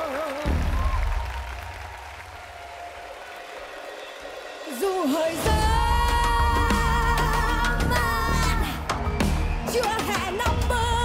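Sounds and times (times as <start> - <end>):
audience applause: 0.0 - 5.5
band backing: 4.5 - 11.0.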